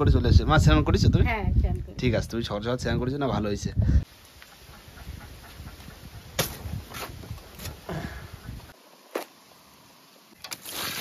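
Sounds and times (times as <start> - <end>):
blade chopping into leaf stalk: 6.4 - 6.6.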